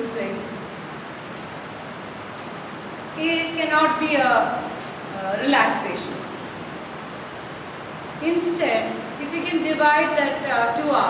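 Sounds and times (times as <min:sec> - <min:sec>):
room tone hiss: 0:00.0 - 0:11.0.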